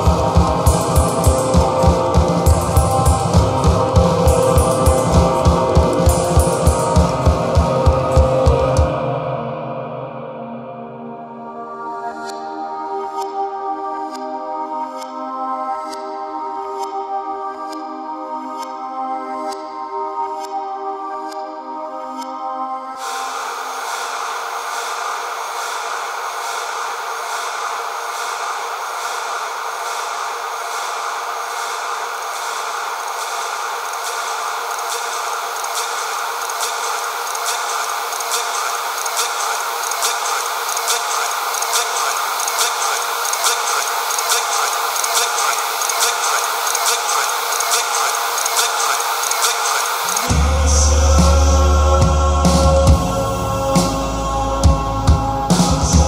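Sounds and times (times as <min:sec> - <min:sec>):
high ticking pulse: 0:00.0 - 0:08.8, 0:23.0 - 0:50.7
deep bass: 0:00.0 - 0:08.9, 0:50.3 - 0:56.0
synthesized noise wash: 0:00.0 - 0:17.7, 0:22.9 - 0:56.0.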